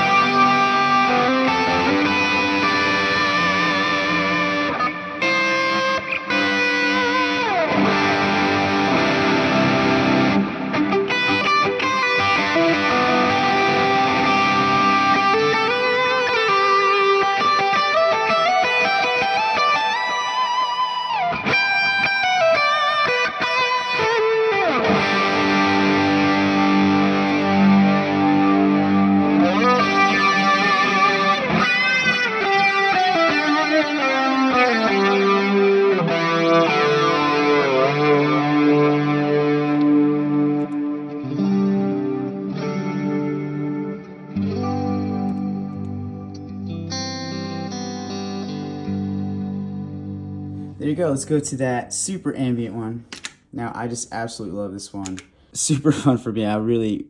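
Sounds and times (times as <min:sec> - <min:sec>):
electric guitar with delay and reverb: 0:00.0 - 0:56.9.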